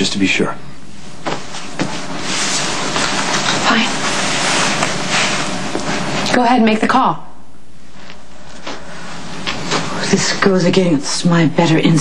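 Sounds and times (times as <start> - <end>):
room tone hum and hiss: 0.0 - 12.0.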